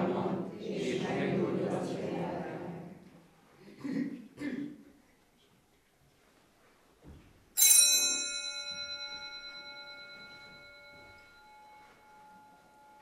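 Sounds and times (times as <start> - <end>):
altar bell ringing: 7.6 - 13.0.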